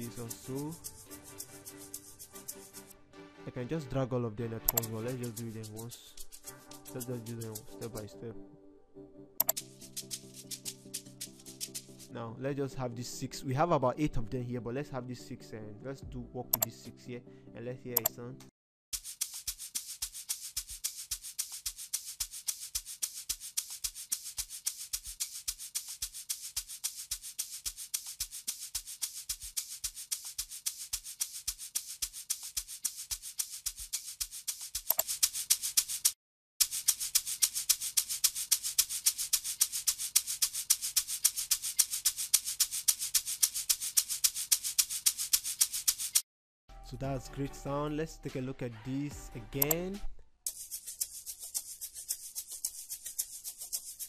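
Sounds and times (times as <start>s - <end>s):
fast hissing shaker rhythm: 0.0s - 2.9s, 4.7s - 8.2s, 9.4s - 12.2s, 19.0s - 46.2s, 50.5s - 54.0s.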